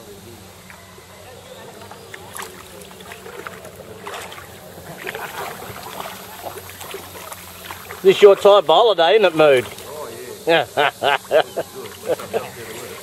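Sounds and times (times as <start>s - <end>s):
paddle splashing in water: 0.6s - 10.2s, 11.2s - 13.0s.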